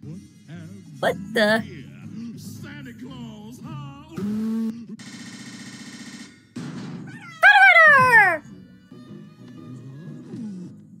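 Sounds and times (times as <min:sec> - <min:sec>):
music: 0:00.0 - 0:05.0, 0:06.6 - 0:11.0
loud cry falling in pitch: 0:07.4 - 0:08.4.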